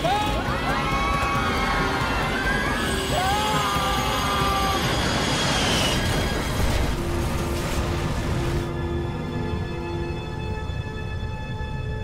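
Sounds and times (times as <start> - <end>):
people crying out: 0.0 - 5.4
low music drone: 0.0 - 12.0.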